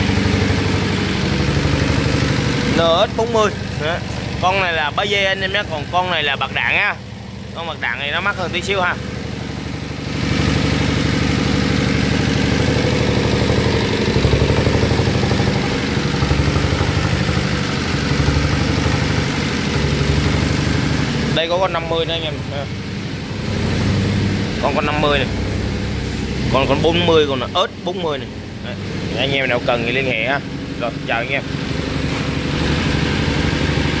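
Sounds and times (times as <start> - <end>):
diesel engine idling: 0.0 - 34.0.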